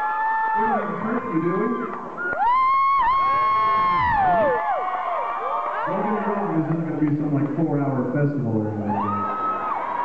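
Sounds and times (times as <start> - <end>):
crowd screaming and cheering: 0.0 - 7.6, 8.5 - 10.0.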